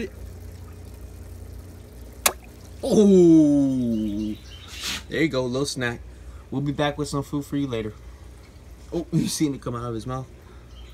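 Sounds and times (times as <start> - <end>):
steady low hum: 0.0 - 4.4
fish snapping at water surface: 2.2 - 2.6.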